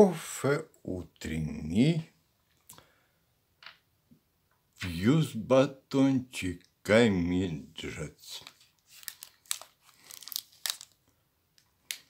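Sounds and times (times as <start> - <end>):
plastic wrapper crinkling: 8.3 - 12.0.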